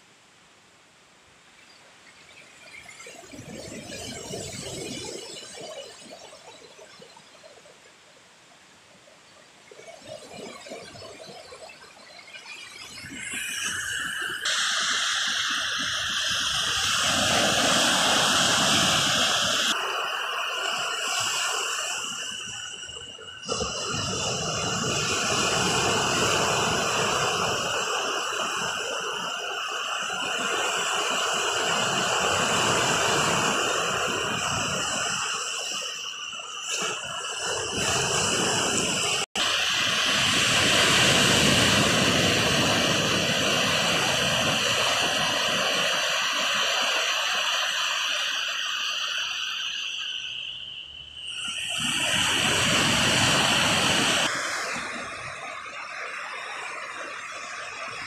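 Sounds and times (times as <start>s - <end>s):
thin high-pitched tone: 10.2s - 39.2s
waves breaking on beach: 13.4s - 58.0s.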